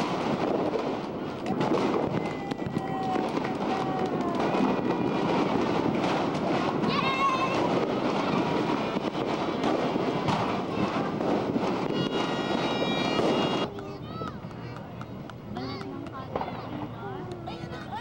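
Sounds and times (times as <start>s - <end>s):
firecrackers crackling: 0.0s - 18.0s
people calling out: 1.5s - 5.1s, 10.7s - 18.0s.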